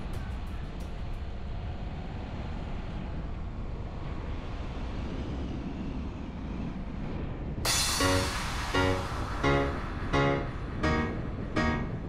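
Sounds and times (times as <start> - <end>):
car engine and tyre rumble: 0.3 - 7.6.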